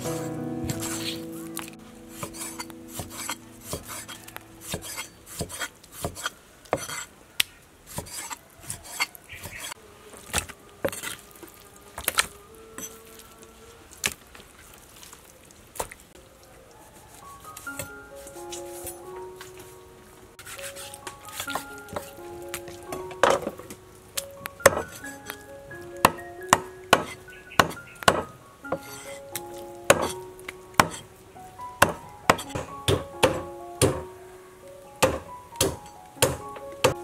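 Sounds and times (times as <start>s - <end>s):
soft background music: 0.0s - 5.8s, 16.2s - 37.0s
cleaver chopping on wooden board: 26.1s - 28.9s, 29.9s - 30.2s, 30.8s - 31.0s, 31.8s - 34.0s, 35.0s - 37.0s.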